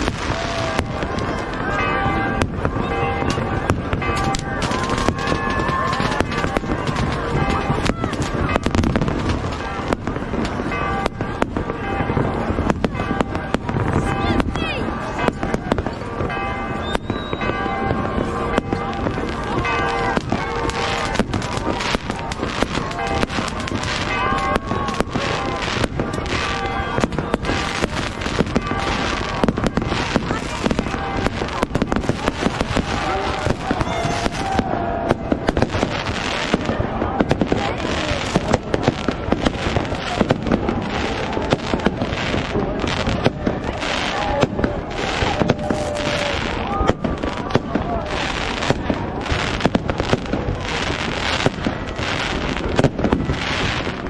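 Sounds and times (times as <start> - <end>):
crowd voices: 0.0 - 54.0
fireworks bangs and crackles: 0.0 - 54.0.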